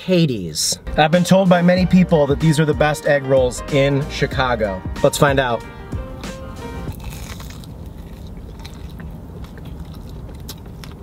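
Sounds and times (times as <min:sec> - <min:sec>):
low steady rumble: 0:00.0 - 0:11.0
crunching and chewing food: 0:06.2 - 0:11.0.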